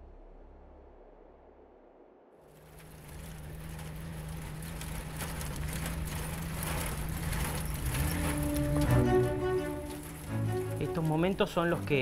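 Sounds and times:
road noise: 0:02.4 - 0:12.0
car engine running: 0:02.5 - 0:12.0.

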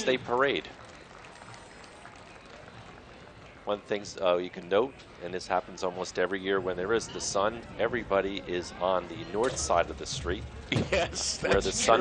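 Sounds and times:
faint street background noise: 0:00.0 - 0:12.0.

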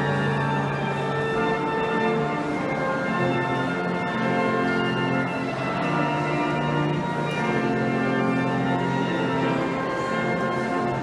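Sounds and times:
church organ playing hymn: 0:00.0 - 0:11.0.

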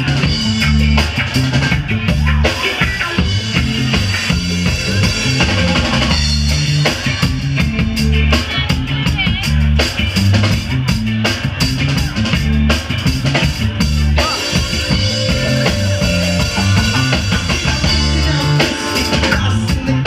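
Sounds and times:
full band playing live: 0:00.0 - 0:20.0
repeating bass line: 0:00.0 - 0:20.0
drum kit hits: 0:12.9 - 0:20.0.

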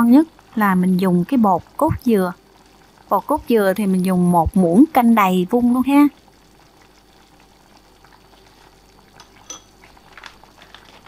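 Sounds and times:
pot bubbling on stove: 0:00.0 - 0:11.0
spoon clink: 0:09.2 - 0:09.8.

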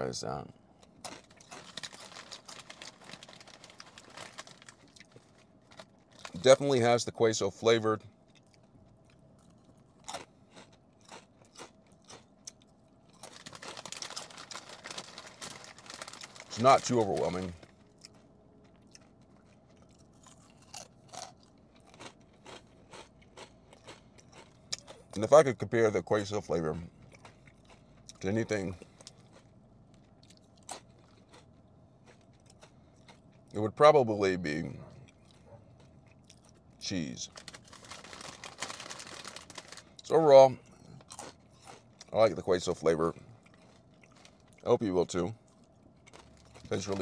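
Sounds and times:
chewing corn chips: 0:00.8 - 0:06.8, 0:08.0 - 0:47.0.

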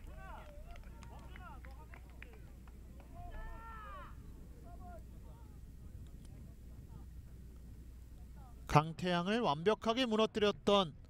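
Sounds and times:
distant voices shouting: 0:00.0 - 0:05.8
low steady hum: 0:00.0 - 0:11.0.

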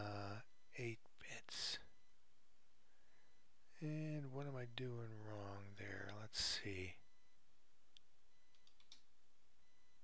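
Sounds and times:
computer keyboard clicks: 0:08.5 - 0:09.1.

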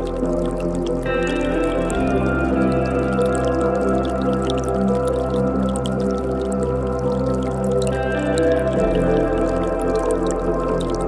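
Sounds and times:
ambient music sustained chords: 0:00.0 - 0:11.0
creek water trickling: 0:00.0 - 0:11.0.

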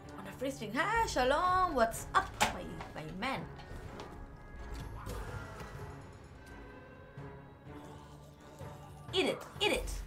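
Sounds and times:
slot game background music: 0:00.0 - 0:10.0.

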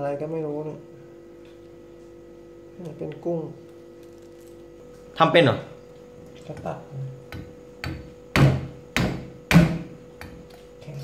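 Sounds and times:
knife chopping on wooden block: 0:07.3 - 0:10.5.

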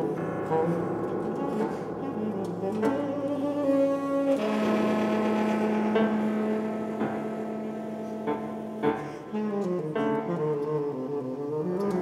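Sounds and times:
grand piano: 0:00.0 - 0:12.0
saxophone: 0:00.0 - 0:12.0.

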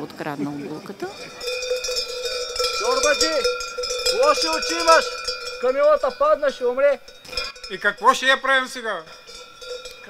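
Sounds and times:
costume bells jangling: 0:00.4 - 0:10.0.

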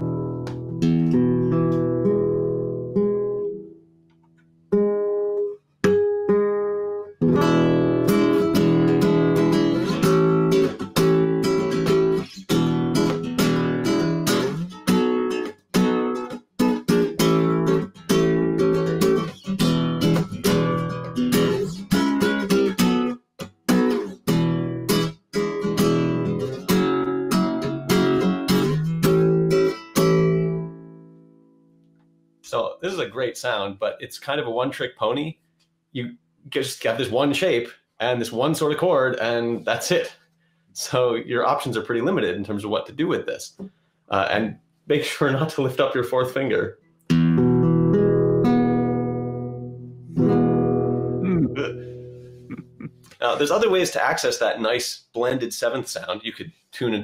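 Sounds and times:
acoustic guitar chords: 0:00.0 - 0:32.3, 0:47.1 - 0:54.2.

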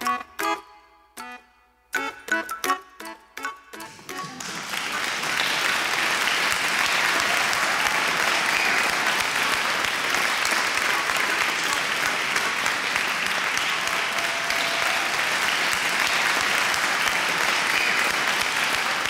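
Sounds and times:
audience applauding: 0:03.9 - 0:19.0.

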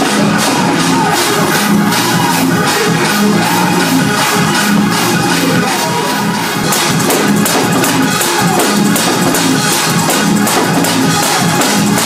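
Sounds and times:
fast drum kit: 0:00.0 - 0:12.0.

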